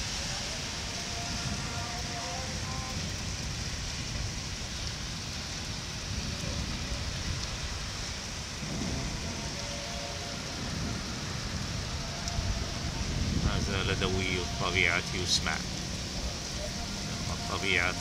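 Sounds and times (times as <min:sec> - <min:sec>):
heavy rain pouring: 0:00.0 - 0:18.0.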